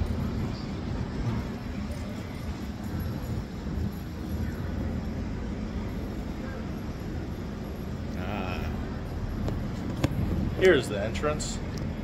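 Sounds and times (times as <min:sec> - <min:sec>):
city street rumble: 0:00.0 - 0:12.0
traffic going by: 0:00.0 - 0:12.0.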